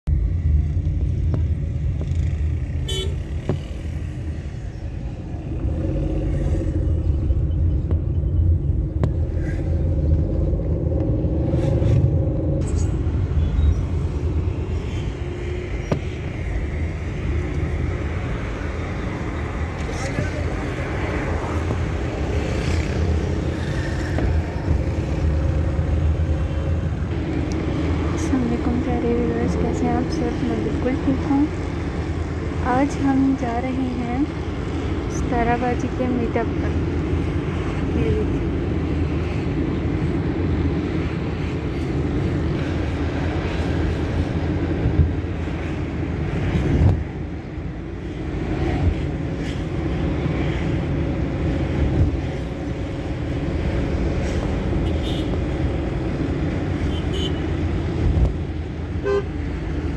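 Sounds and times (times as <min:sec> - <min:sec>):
engine and road rumble: 0:00.0 - 0:59.9
car horns honking: 0:02.8 - 0:03.6, 0:54.8 - 0:55.3, 0:56.9 - 0:57.5, 0:59.0 - 0:59.4.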